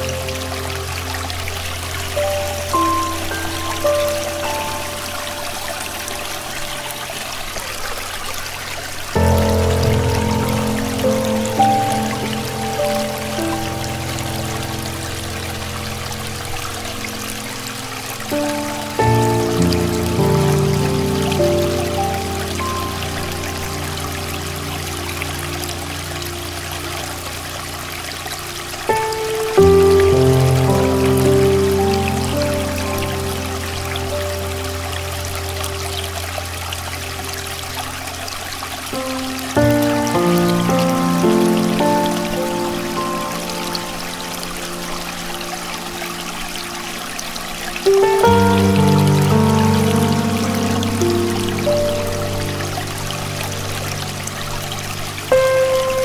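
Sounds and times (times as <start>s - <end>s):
soft solo piano: 0.0s - 56.0s
stream water flowing: 0.0s - 56.0s.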